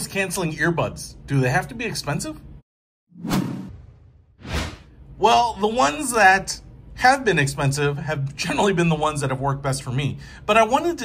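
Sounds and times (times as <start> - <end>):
whoosh sound effects: 3.2 - 4.9.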